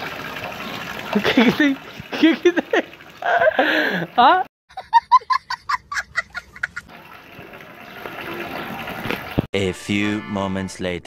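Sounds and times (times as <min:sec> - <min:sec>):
water pouring into a tank: 0:00.0 - 0:04.4, 0:06.9 - 0:09.5.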